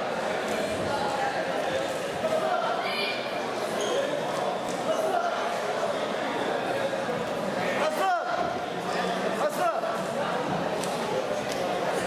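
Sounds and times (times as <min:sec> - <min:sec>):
chatter of many voices echoing: 0:00.0 - 0:12.0.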